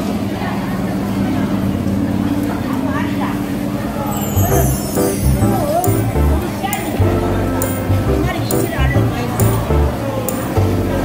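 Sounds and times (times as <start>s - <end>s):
music with bass beat: 4.4s - 11.0s.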